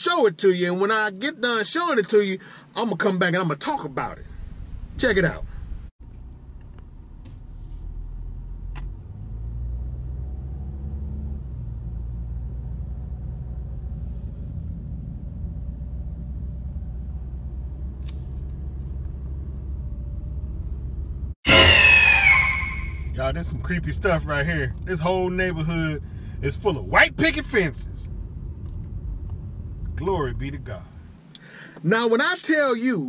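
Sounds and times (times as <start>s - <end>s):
engine and tyre rumble: 4.2s - 21.4s, 23.1s - 31.8s
man talking: 23.1s - 28.1s, 30.0s - 31.0s.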